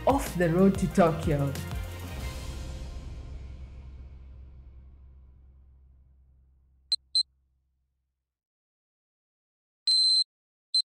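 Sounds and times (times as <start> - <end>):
low background music: 0.0 - 6.3.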